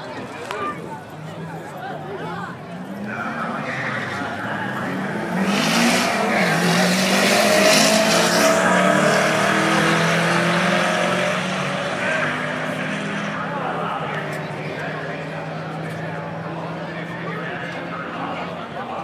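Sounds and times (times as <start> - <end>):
car engine accelerating: 1.3 - 19.0.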